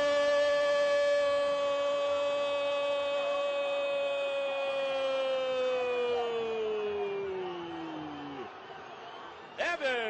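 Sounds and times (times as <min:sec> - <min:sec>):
man shouting goal: 0:00.0 - 0:07.5.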